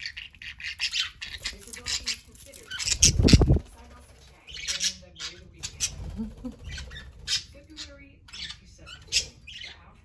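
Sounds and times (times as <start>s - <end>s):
budgerigars chirping: 0.0s - 10.0s.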